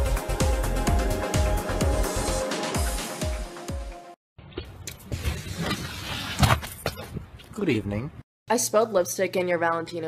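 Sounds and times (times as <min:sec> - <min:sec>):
dance music: 0:00.0 - 0:04.1.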